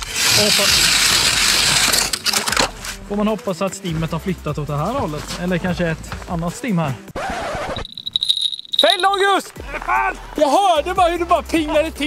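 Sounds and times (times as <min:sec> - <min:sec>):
ice auger grinding through ice: 0:00.0 - 0:02.7.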